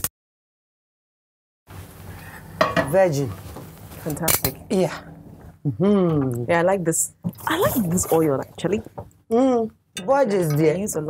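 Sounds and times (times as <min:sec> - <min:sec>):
woman speaking: 0:04.0 - 0:05.0, 0:06.1 - 0:08.9, 0:10.2 - 0:11.0.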